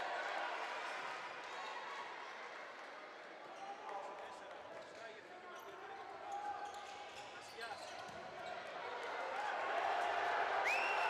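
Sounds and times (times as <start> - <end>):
crowd voices in large hall: 0.0 - 11.0.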